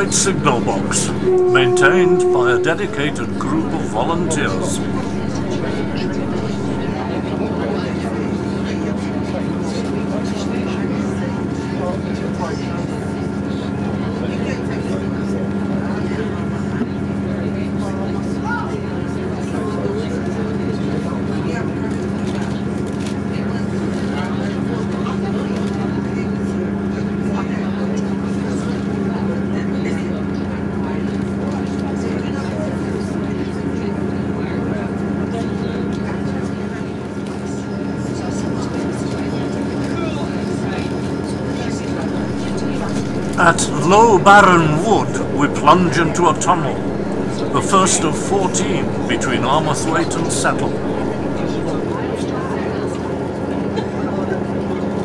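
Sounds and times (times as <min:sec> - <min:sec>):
train engine drone: 0:00.0 - 0:07.0, 0:42.1 - 0:51.9
train rolling noise: 0:00.0 - 0:07.0, 0:42.1 - 0:51.8.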